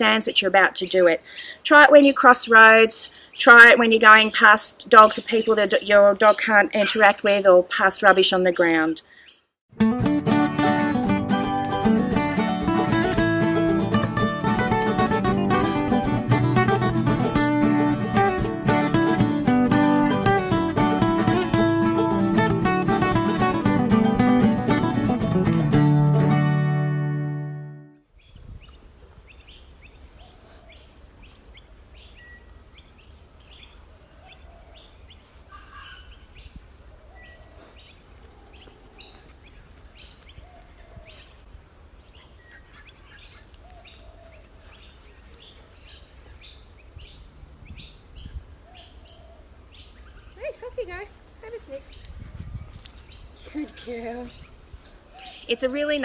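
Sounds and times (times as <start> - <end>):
birds chirping: 0.0 - 9.6, 28.1 - 56.0
strummed acoustic guitar music: 9.7 - 28.0.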